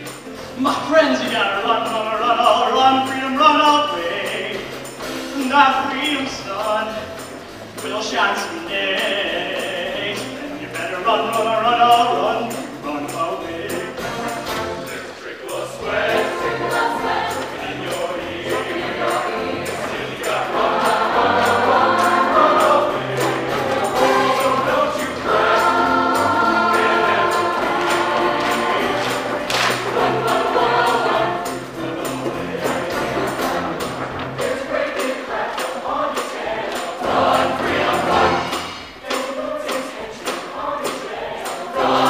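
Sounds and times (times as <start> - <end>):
choir singing in harmony: 0.0 - 42.0
steady beat: 15.8 - 40.6.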